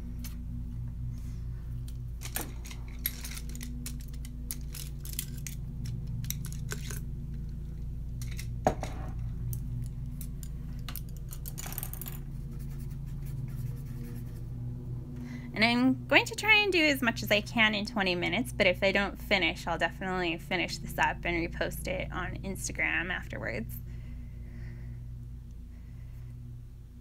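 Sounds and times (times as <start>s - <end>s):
low hum: 0.0s - 27.0s.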